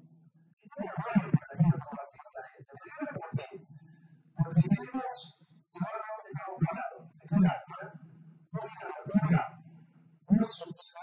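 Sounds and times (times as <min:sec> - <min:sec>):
man talking into a microphone: 0:00.7 - 0:03.7, 0:04.4 - 0:09.6, 0:10.3 - 0:11.0.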